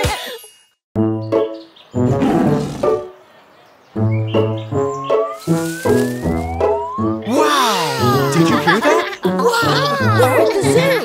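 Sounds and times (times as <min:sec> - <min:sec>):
bouncy cartoon music: 0:01.0 - 0:03.1, 0:04.0 - 0:11.0
rising whistle-like glide: 0:05.3 - 0:07.9.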